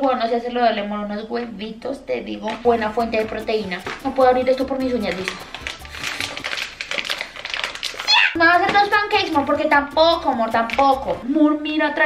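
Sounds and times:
plastic pouch crinkling: 2.5s - 11.2s.

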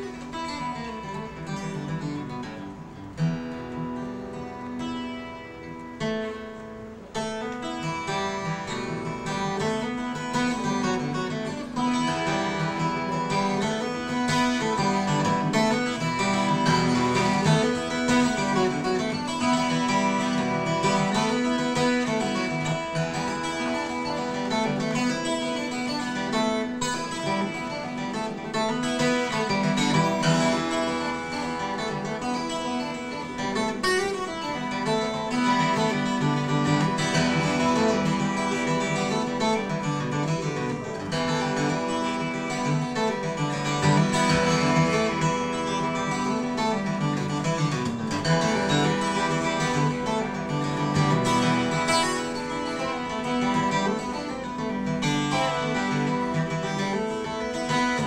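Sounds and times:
twelve-string acoustic guitar picked: 0.0s - 58.0s.

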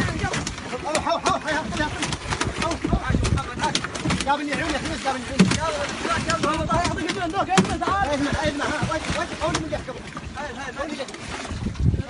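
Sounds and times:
water splashing: 0.0s - 12.0s
sharp knocks: 0.1s - 9.7s.

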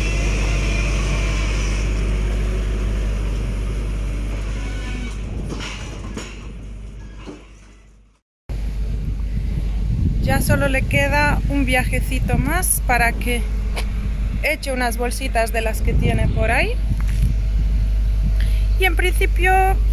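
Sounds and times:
diesel engine running: 0.0s - 19.9s
wind rumble on microphone: 8.5s - 19.9s.

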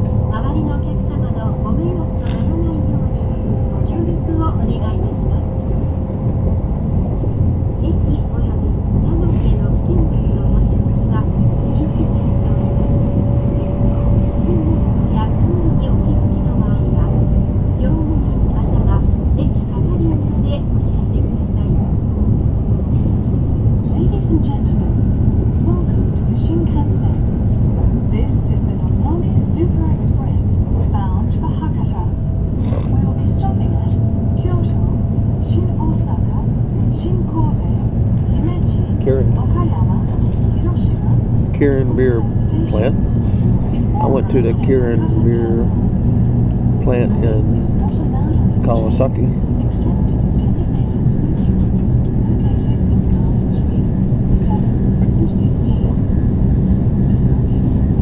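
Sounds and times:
train interior rumble: 0.0s - 58.0s.

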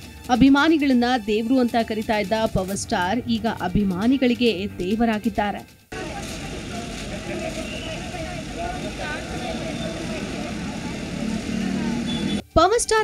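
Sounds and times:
people talking indistinctly: 0.3s - 13.0s
traffic hum: 5.9s - 12.4s.

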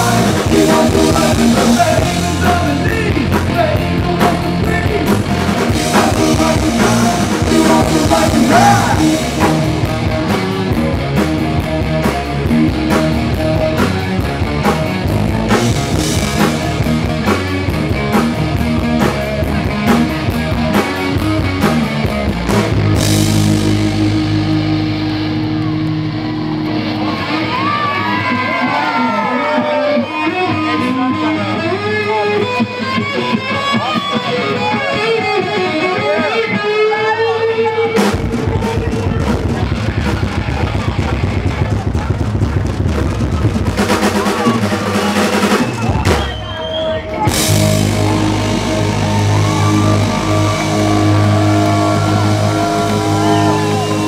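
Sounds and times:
live hard rock band: 0.0s - 54.0s
electric guitar solo with bends: 22.3s - 39.0s, 47.0s - 54.0s.

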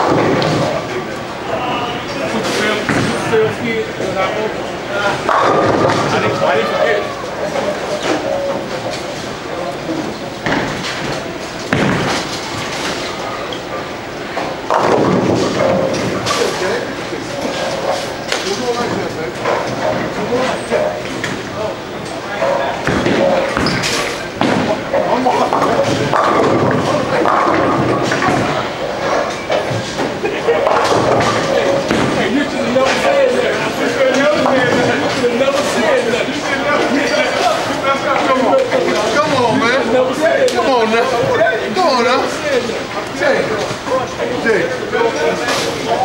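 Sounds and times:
chatter of many voices: 0.0s - 46.0s
bowling balls crashing into pins: 5.2s - 6.8s, 10.4s - 13.2s, 14.4s - 16.8s, 22.5s - 35.2s.

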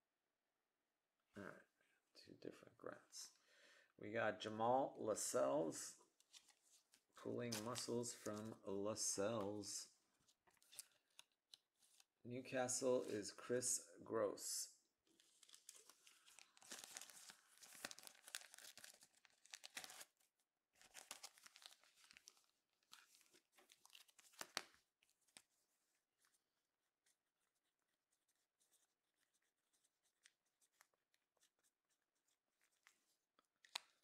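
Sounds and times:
plastic card sleeve crinkling: 6.2s - 8.6s, 10.3s - 12.1s, 15.1s - 20.1s, 20.8s - 26.4s, 27.0s - 34.0s.

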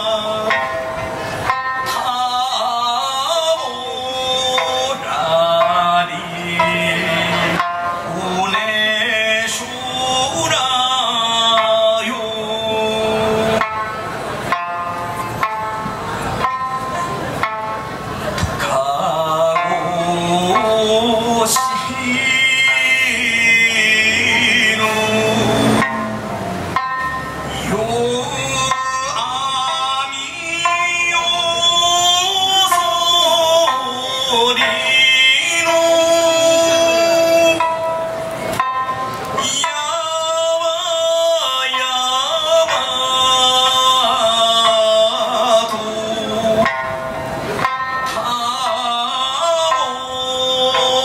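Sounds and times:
man singing a folk song: 0.0s - 13.8s, 18.3s - 38.1s, 39.3s - 47.0s, 48.0s - 51.0s
plucked lute accompaniment: 24.2s - 28.4s.

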